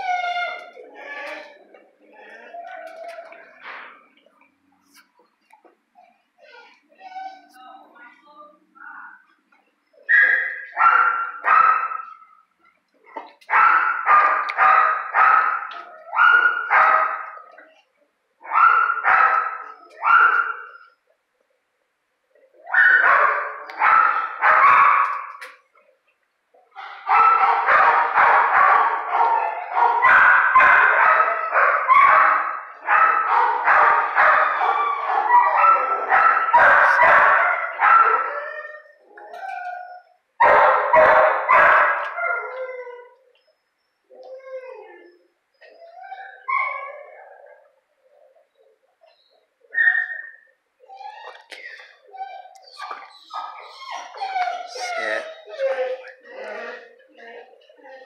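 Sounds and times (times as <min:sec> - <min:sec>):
dogs barking and yelping: 0:00.0 - 0:04.2, 0:05.6 - 0:07.6, 0:09.2 - 0:17.8, 0:18.4 - 0:21.2, 0:22.3 - 0:25.9, 0:26.5 - 0:58.0.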